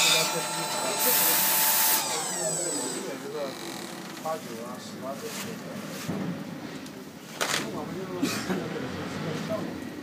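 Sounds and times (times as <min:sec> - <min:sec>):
cutting machine blade noise: 0:00.0 - 0:04.3.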